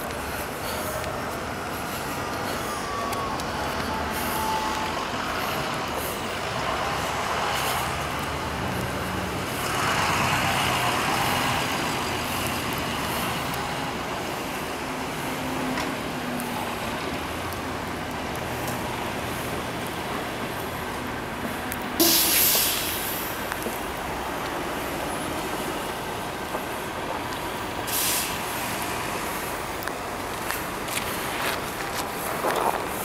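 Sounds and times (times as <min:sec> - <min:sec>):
tire hiss: 0:00.0 - 0:33.0
vehicles passing on snowy road: 0:00.0 - 0:33.0.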